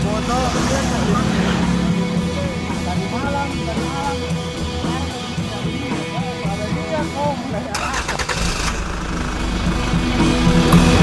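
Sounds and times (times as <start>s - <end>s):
motorcycle engine starting and running: 0.0s - 11.0s
rock music: 0.0s - 11.0s.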